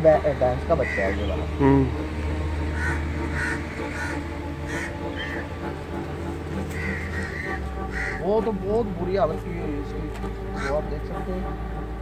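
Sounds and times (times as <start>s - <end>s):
steady low hum: 0.0s - 12.0s
crows cawing: 0.2s - 11.2s.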